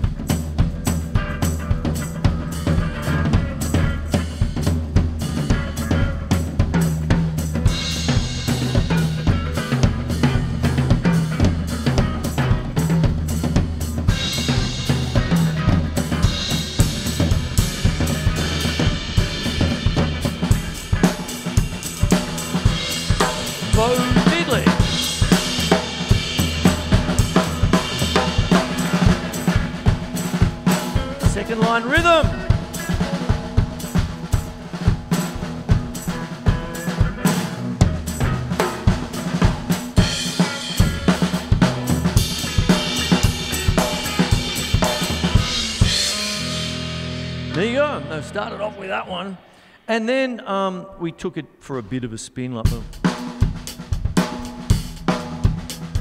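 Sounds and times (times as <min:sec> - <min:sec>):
electric guitar riff: 0:00.0 - 0:49.9
drum kit groove: 0:00.0 - 0:50.2, 0:52.5 - 0:56.0.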